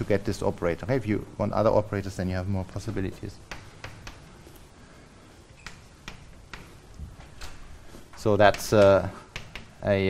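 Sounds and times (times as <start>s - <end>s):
chalk tapping on blackboard: 3.5s - 4.4s, 5.6s - 7.0s, 8.4s - 9.9s.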